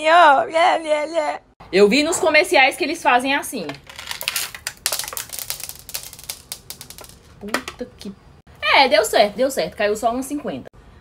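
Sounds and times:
plastic pot clicking and crackling: 0:03.8 - 0:07.8.

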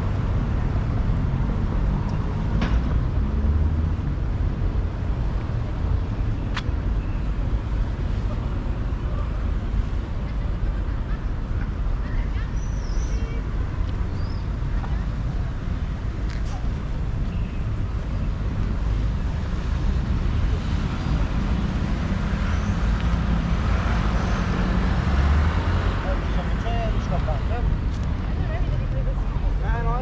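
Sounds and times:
faint voices of passers-by: 0:00.0 - 0:30.0
road traffic rumble: 0:00.0 - 0:30.0.

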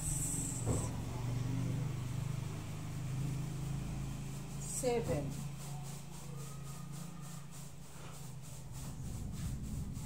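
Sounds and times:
low motor hum: 0:00.0 - 0:07.4.

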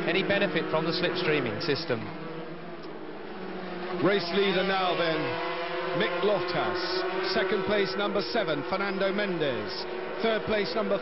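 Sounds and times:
racing motorcycles at speed: 0:00.0 - 0:11.0.

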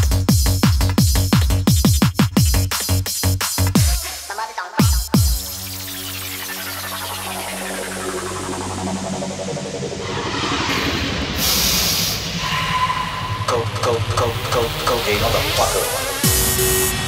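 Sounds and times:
rave music breakdown: 0:00.0 - 0:17.0
hissing sweeping noise effect: 0:05.4 - 0:17.0.

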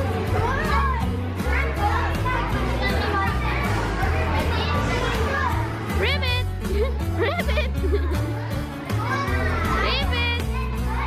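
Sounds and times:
children playing: 0:00.0 - 0:11.0
music with steady bass line: 0:00.0 - 0:11.0.

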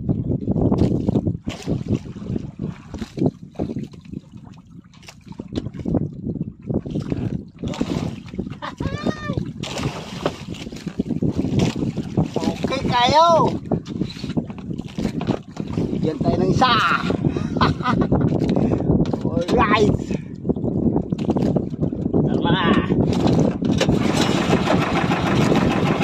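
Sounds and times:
water washing against boat hull: 0:00.0 - 0:26.0
wind buffeting microphone: 0:00.0 - 0:26.0
man calling out: 0:08.6 - 0:09.4, 0:12.5 - 0:13.6, 0:16.1 - 0:17.2, 0:19.4 - 0:20.2, 0:22.3 - 0:23.0.

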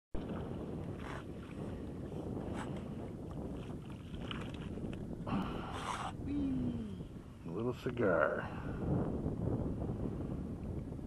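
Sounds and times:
water lapping: 0:00.2 - 0:07.3
wind buffeting microphone: 0:00.2 - 0:11.0.

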